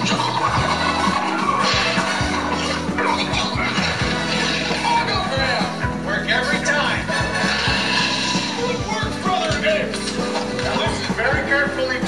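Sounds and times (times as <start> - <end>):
film music on television: 0.0 - 12.0.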